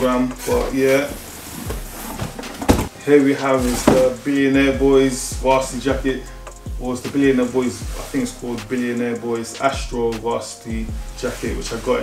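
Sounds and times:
cardboard box rustling: 0.3s - 4.2s.

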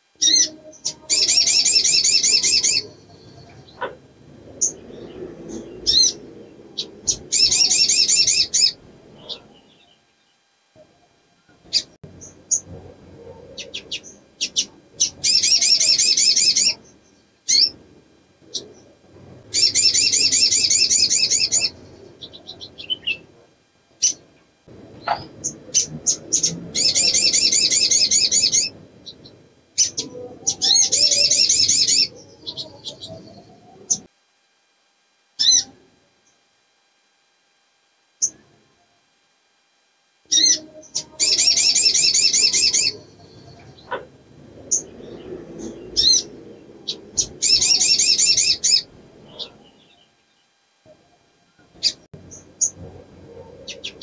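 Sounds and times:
sunbird high trills: 0.2s - 4.0s, 19.5s - 23.3s, 25.0s - 34.1s, 40.3s - 51.0s.

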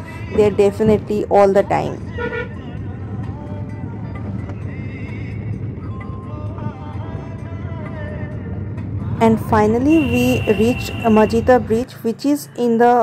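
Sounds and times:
car driving on rough road: 0.0s - 13.0s
faint music: 0.0s - 13.0s.

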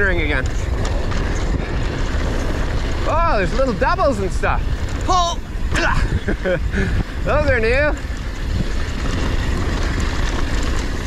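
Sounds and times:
bike tyres rolling on dirt: 0.0s - 11.0s
wind rushing over microphone: 0.0s - 11.0s.

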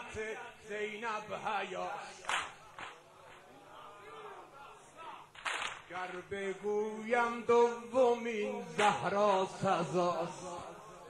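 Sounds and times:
man reciting poetry: 0.0s - 2.9s, 3.7s - 11.0s.

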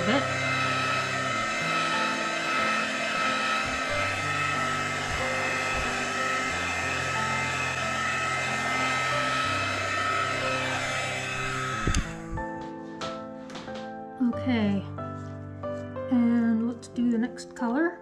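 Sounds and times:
heat gun blowing air: 0.0s - 12.6s
background music: 0.0s - 18.0s.

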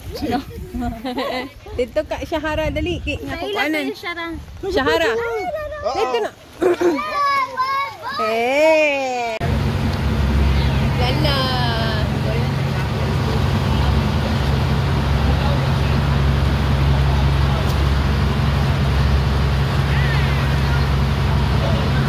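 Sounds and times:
boat engine humming: 7.2s - 22.0s
water rushing past: 9.4s - 22.0s.

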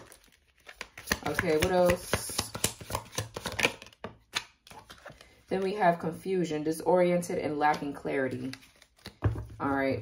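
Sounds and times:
cards being shuffled: 0.1s - 5.7s, 7.7s - 9.5s.

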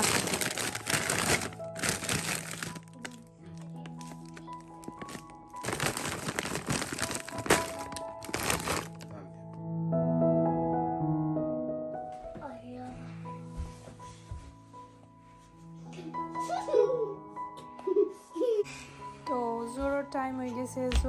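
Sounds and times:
plastic bag crinkling: 0.0s - 9.1s
soft background music: 0.0s - 21.0s.

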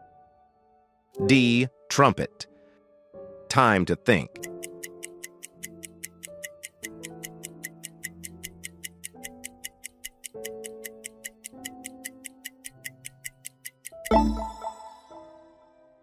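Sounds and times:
soft background music: 0.0s - 16.0s
countdown timer ticking: 4.3s - 15.5s.

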